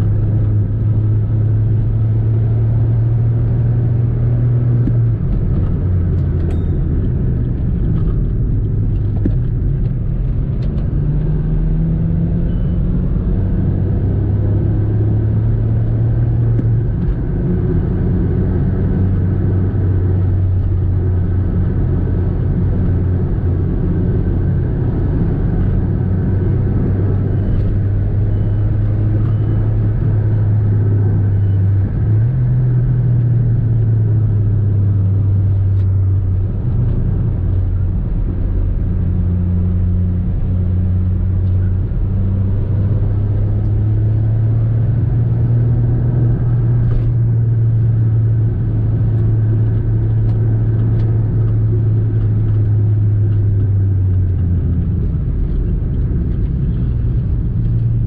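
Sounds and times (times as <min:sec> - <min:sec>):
car engine and tyre drone: 0:00.0 - 0:58.0.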